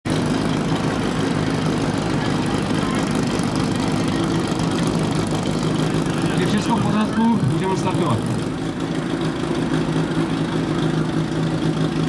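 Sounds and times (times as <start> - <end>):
pump engine idling: 0.1 - 12.0.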